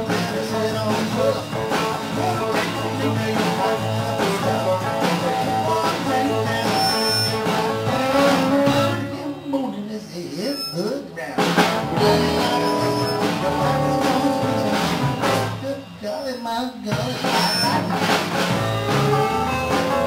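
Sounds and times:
blues-rock band playing: 0.0 - 9.5, 11.4 - 16.1, 16.7 - 20.0.

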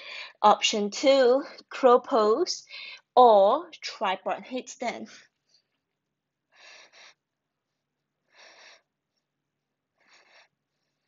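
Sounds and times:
woman breathing quickly: 0.0 - 0.4, 2.6 - 3.1, 6.4 - 11.0.

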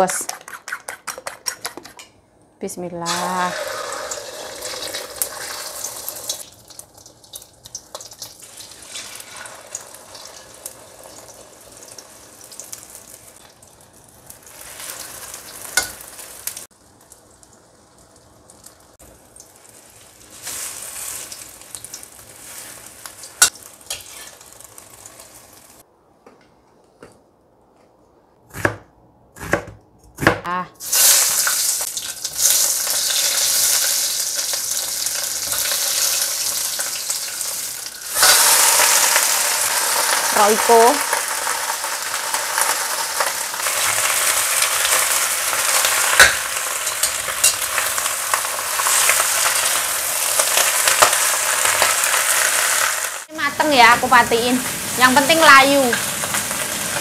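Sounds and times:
egg frying in oil: 3.1 - 25.8, 30.8 - 57.0
greens sizzling in a hot wok: 3.1 - 25.8, 30.8 - 57.0
metal spatula scraping a pan: 22.4 - 24.4.

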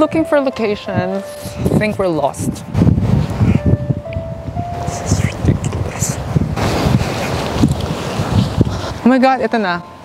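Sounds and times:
wind buffeting microphone: 0.0 - 9.8.

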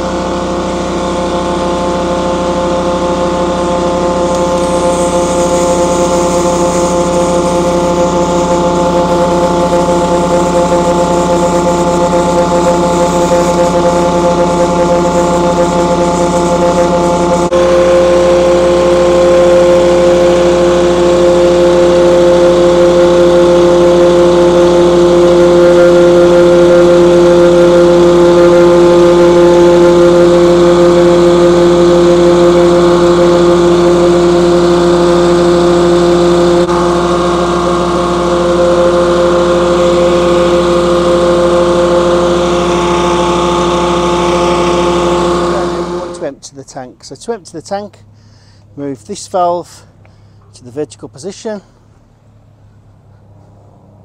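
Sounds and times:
diesel engine running: 0.0 - 54.0
vacuum pump whining: 0.0 - 54.0.

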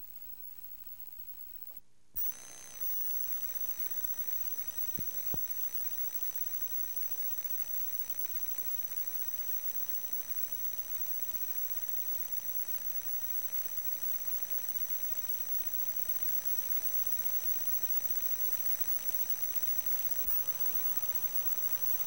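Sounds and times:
tape hiss: 0.0 - 22.0
high-pitched electronic whine: 2.2 - 22.0.

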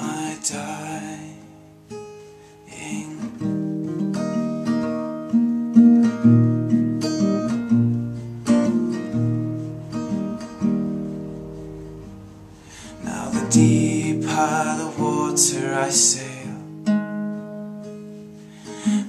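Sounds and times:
acoustic guitar chords: 0.0 - 19.0.

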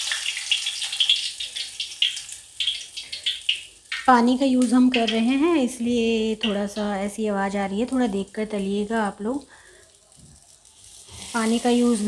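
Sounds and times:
batter frying in hot oil: 0.0 - 12.0.

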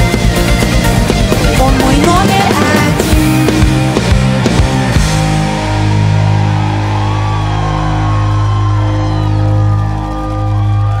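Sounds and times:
live pop band playing: 0.0 - 11.0
audience shouts: 5.9 - 11.0.

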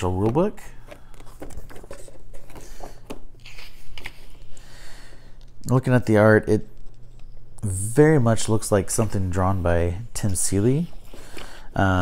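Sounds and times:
paper rustling and crinkling: 0.0 - 4.5.

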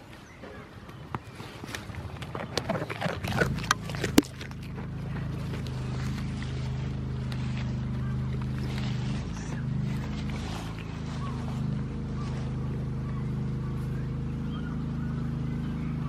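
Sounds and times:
goats tearing and chewing grass: 0.0 - 16.0
steady engine drone: 0.0 - 16.0.

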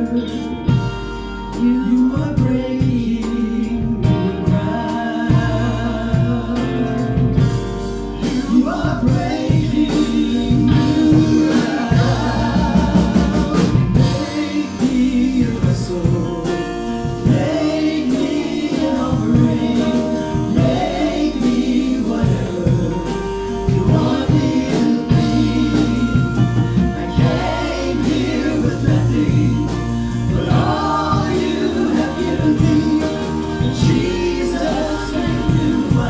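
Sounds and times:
bass line: 0.0 - 36.0
keyboard chords: 0.0 - 36.0
voices singing together: 1.5 - 36.0.

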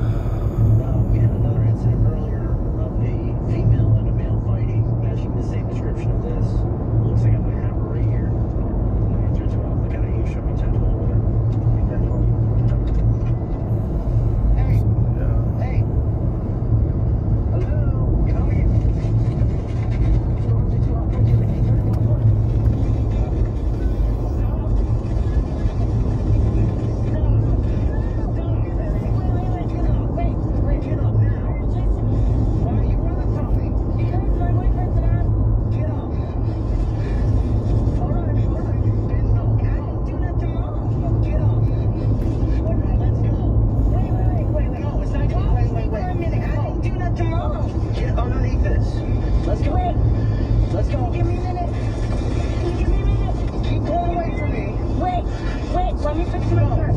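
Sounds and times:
radio voice: 0.0 - 16.7, 17.4 - 56.9
radio music: 0.0 - 56.9
road noise: 0.0 - 56.9
truck engine rumble: 0.0 - 56.9.

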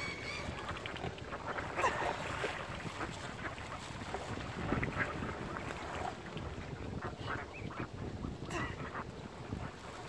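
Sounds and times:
waterfowl call: 0.0 - 2.5
lake waves lapping at shore: 0.0 - 10.0
wind on microphone: 0.0 - 10.0.

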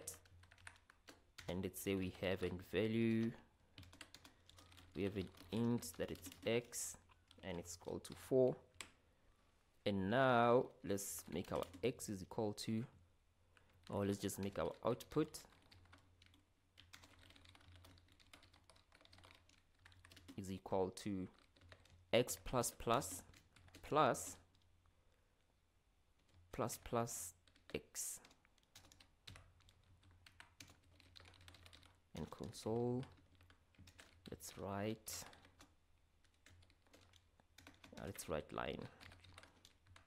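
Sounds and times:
keyboard typing: 0.0 - 9.0, 11.0 - 12.0, 13.6 - 20.4, 21.3 - 24.7, 26.2 - 40.0.

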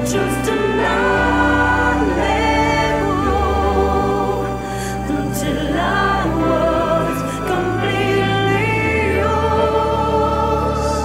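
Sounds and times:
choir singing worship song: 0.0 - 11.0
sustained accompaniment: 0.0 - 11.0.

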